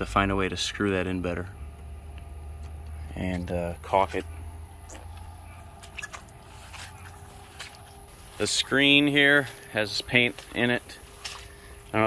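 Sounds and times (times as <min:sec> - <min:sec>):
low steady hum: 0:00.0 - 0:12.0
footsteps through wet grass: 0:02.3 - 0:12.0.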